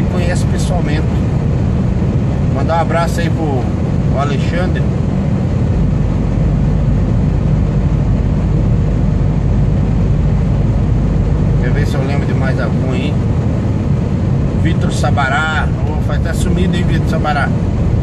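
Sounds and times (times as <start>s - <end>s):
truck engine drone and road noise: 0.0s - 18.0s.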